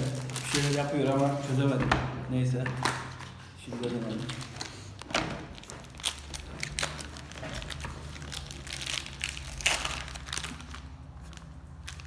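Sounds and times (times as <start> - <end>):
plastic pouch crinkling: 0.0 - 1.4, 5.5 - 12.0.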